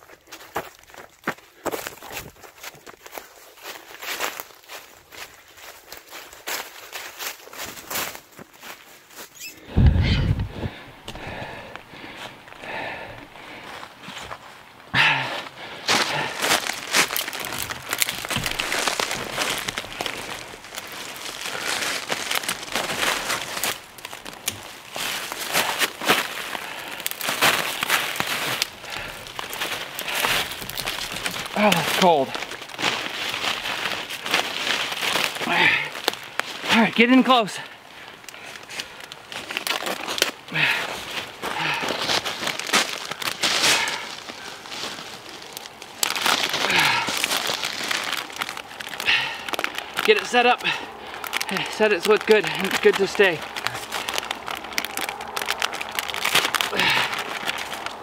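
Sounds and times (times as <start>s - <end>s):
footsteps running through dry leaves: 0.0s - 9.4s, 12.6s - 36.7s, 38.6s - 58.0s
rustling and crunching of leaves: 0.0s - 58.0s.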